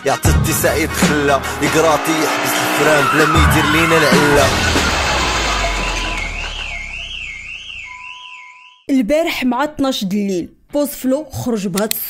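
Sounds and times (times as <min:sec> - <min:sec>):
intro music: 0:00.0 - 0:07.9
steady tone: 0:00.4 - 0:08.0
high warbling tone: 0:00.4 - 0:08.2.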